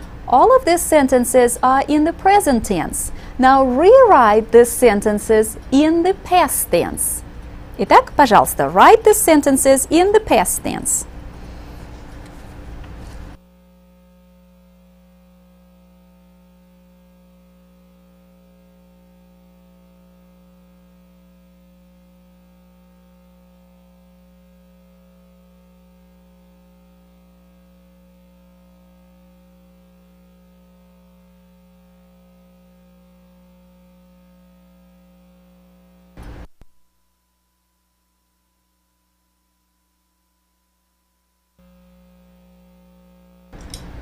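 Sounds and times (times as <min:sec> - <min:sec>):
faint electrical hum: 0:00.0 - 0:44.0.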